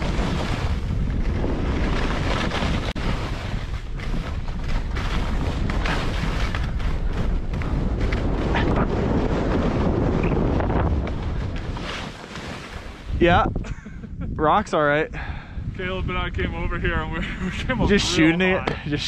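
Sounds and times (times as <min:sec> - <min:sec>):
skis scraping over bumpy snow: 0:00.0 - 0:13.3
wind buffeting microphone: 0:00.0 - 0:19.0.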